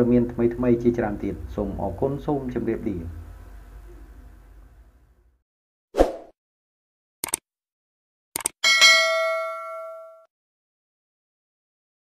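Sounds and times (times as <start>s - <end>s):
bell chime: 8.6s - 10.3s.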